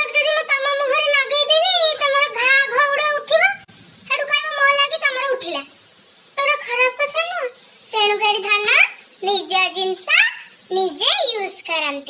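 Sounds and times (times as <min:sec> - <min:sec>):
girl talking in high pitch: 0:00.0 - 0:05.8, 0:06.4 - 0:12.0.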